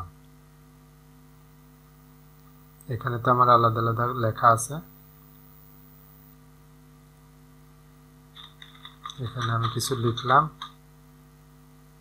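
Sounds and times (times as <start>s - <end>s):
low electrical hum: 0.0s - 12.0s
person speaking: 8.4s - 10.7s.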